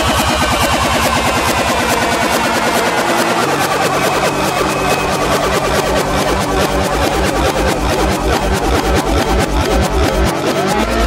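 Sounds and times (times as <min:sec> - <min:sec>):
backwards synth lines: 0:00.0 - 0:11.0
pulsing bass beat: 0:00.0 - 0:11.0.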